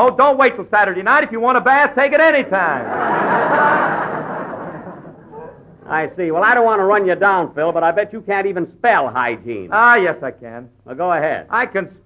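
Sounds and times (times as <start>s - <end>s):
man's voice: 0.0s - 2.9s, 5.8s - 12.0s
studio audience laughing: 2.7s - 5.8s.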